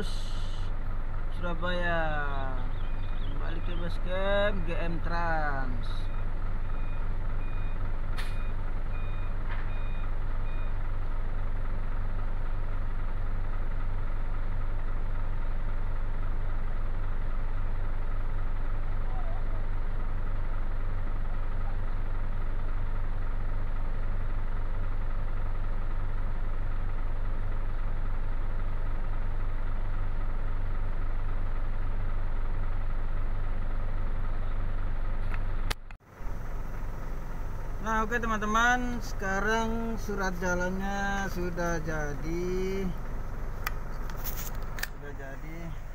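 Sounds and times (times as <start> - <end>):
diesel truck engine idling: 0.0 - 45.9
reversing alarm beeping: 6.0 - 10.8.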